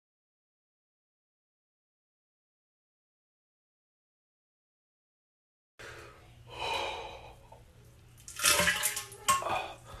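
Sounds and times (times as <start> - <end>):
man exhaling breathily: 5.8 - 7.4.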